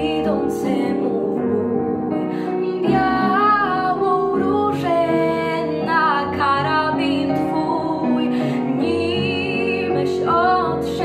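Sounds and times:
girl singing: 0.0 - 11.0.

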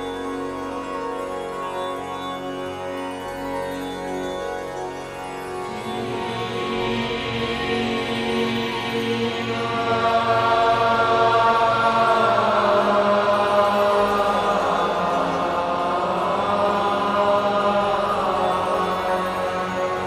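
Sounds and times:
background music of held notes: 0.0 - 20.0.

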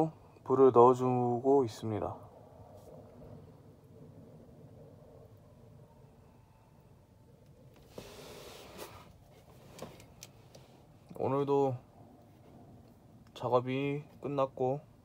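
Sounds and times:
faint outdoor background noise: 0.0 - 15.0
brief hiss: 7.8 - 10.0.

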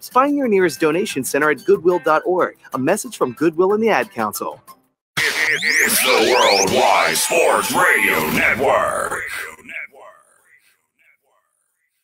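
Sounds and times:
faint voice: 5.2 - 10.2.

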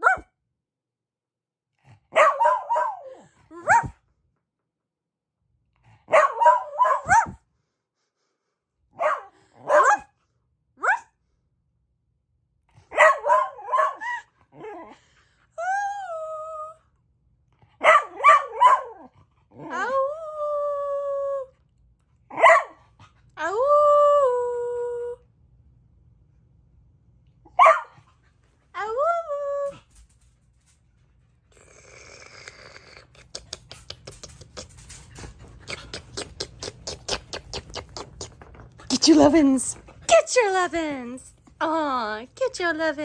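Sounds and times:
dog barking: 0.0 - 0.3, 2.1 - 4.0, 6.1 - 7.4, 9.0 - 10.1, 10.8 - 11.1, 12.9 - 14.2, 17.8 - 19.1, 22.3 - 22.8, 27.5 - 28.1
dog yelping: 2.2 - 4.0, 6.1 - 7.4, 12.9 - 14.3
dog panting: 33.2 - 41.5.

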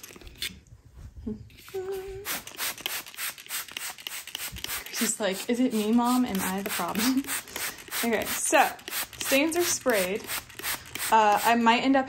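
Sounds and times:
short hum-like voice: 1.3 - 2.3
trigger spray bottle hissing: 2.2 - 11.5.

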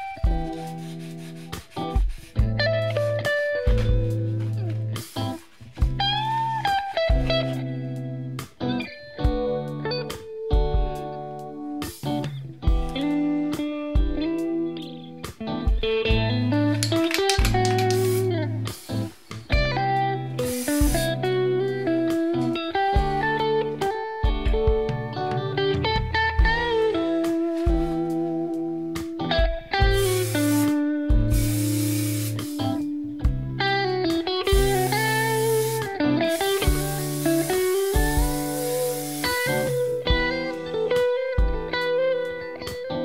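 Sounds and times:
electric guitar melody: 0.0 - 43.0
instrumental backing music: 0.0 - 43.0
aerosol spray can hissing: 5.0 - 5.5, 17.1 - 19.4, 20.4 - 21.2, 29.9 - 32.8, 34.4 - 40.0.

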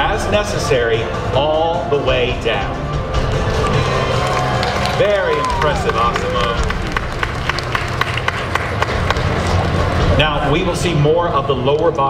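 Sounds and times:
crowd rumble in large hall: 0.0 - 12.0.

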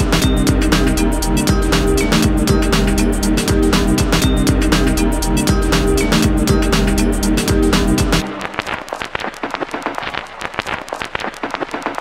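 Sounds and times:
electronic crackling clicks: 8.2 - 12.0.

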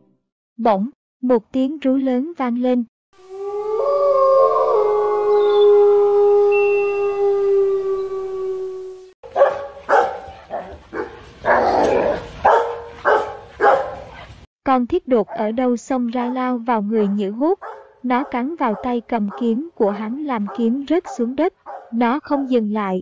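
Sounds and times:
dog howling: 3.2 - 9.1
dog barking rapidly: 9.2 - 11.7, 12.4 - 14.4, 16.2 - 22.6.

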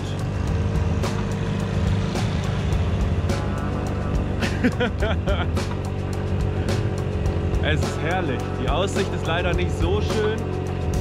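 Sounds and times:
scooter engine under load: 0.0 - 11.0
person laughing: 4.2 - 5.7.

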